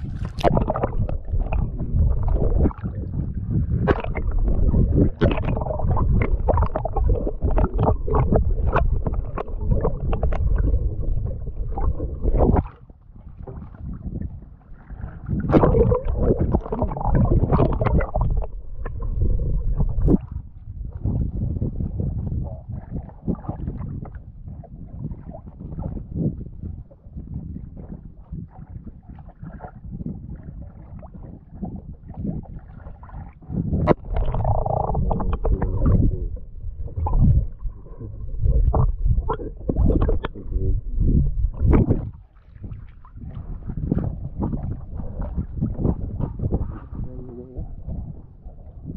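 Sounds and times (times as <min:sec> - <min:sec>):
muffled underwater rumble: 0:00.0 - 0:48.9
water sloshing and gurgling: 0:00.0 - 0:48.9.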